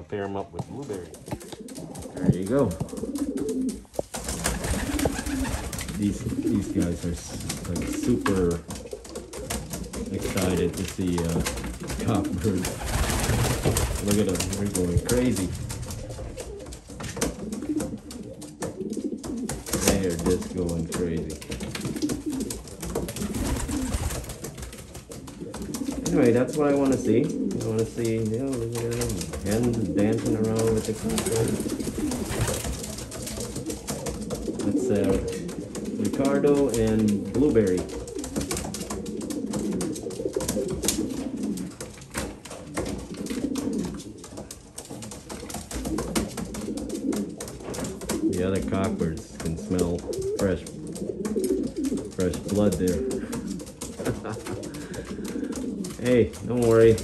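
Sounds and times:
birds scuffling in cage: 0:00.6 - 0:57.0
wing flaps: 0:00.6 - 0:57.0
pigeon cooing low: 0:00.8 - 0:56.1.

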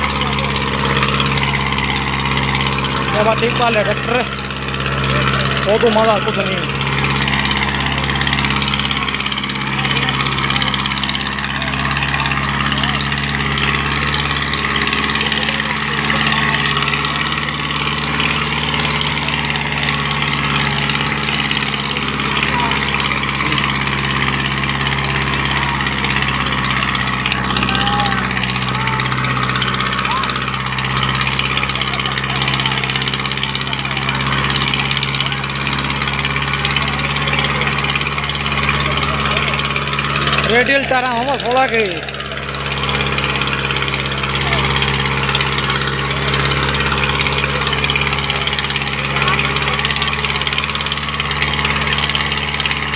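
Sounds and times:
tractor diesel engine under load: 0:00.0 - 0:52.9.

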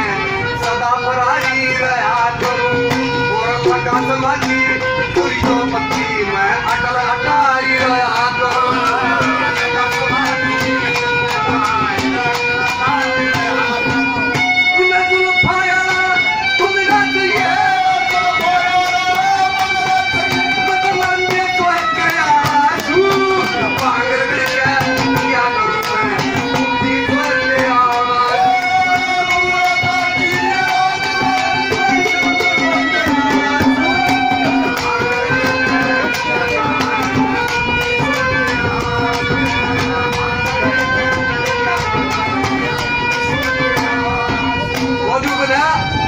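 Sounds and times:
hand drum beat: 0:00.0 - 0:46.0
wavering folk melody: 0:00.0 - 0:46.0.

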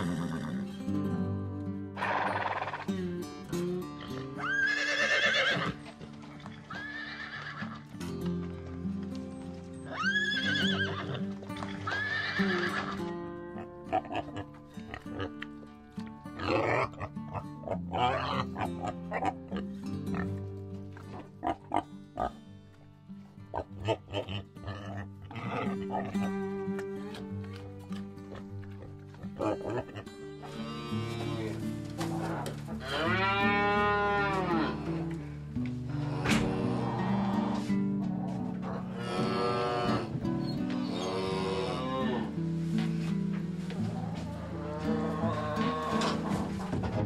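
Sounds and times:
pigs grunting: 0:00.0 - 0:00.7, 0:12.2 - 0:15.4, 0:16.4 - 0:20.4, 0:21.0 - 0:22.4, 0:23.5 - 0:26.4, 0:28.2 - 0:35.1, 0:35.9 - 0:42.3, 0:43.8 - 0:47.0
background music: 0:00.0 - 0:47.0
horse whinnying: 0:02.0 - 0:02.9, 0:04.4 - 0:05.8, 0:06.5 - 0:07.7, 0:09.9 - 0:13.2.

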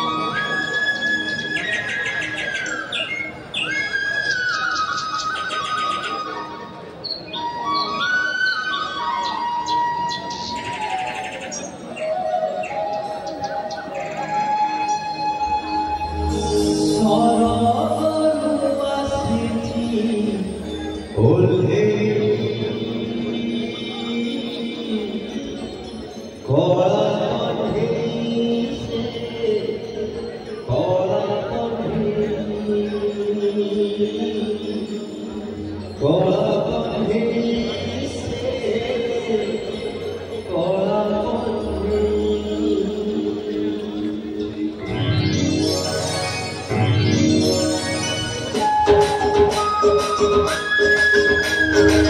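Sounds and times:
whistled notes: 0:00.0 - 0:17.3, 0:45.8 - 0:52.0
background music: 0:00.0 - 0:52.0
birdsong chirping trills: 0:09.1 - 0:15.0.

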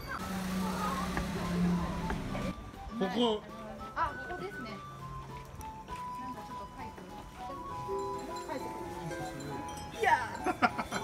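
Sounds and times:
car engine humming: 0:00.0 - 0:02.6
road noise: 0:00.0 - 0:11.0.

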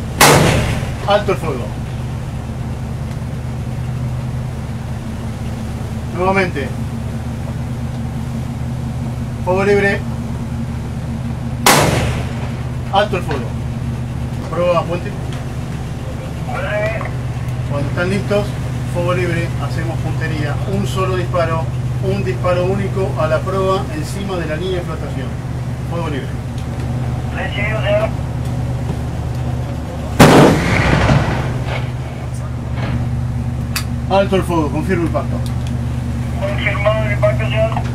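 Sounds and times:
steady low hum: 0:00.0 - 0:37.9
gunshot: 0:00.2 - 0:01.0, 0:11.6 - 0:12.6, 0:30.2 - 0:32.0
cannon shot with reverberation: 0:00.2 - 0:01.3, 0:11.6 - 0:13.4, 0:30.2 - 0:33.2.

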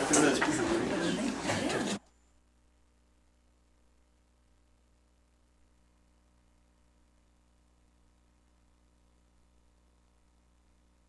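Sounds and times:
voices in small room: 0:00.0 - 0:02.1.

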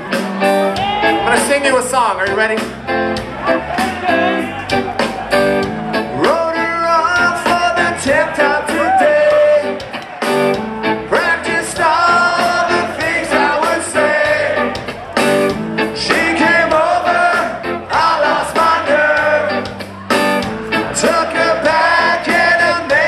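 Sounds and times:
ska punk band playing: 0:00.0 - 0:23.0
man singing: 0:06.1 - 0:09.8, 0:11.1 - 0:14.5, 0:15.9 - 0:19.7, 0:20.8 - 0:23.0.

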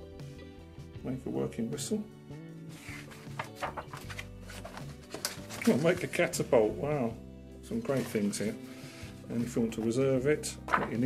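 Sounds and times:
background music held notes: 0:00.0 - 0:11.0
magazine page turning: 0:02.7 - 0:06.4, 0:07.7 - 0:09.9, 0:10.6 - 0:11.0.

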